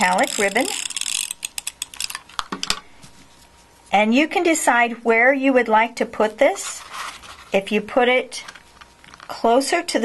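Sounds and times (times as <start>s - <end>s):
tape runner ratchet clicks: 0.0s - 2.5s.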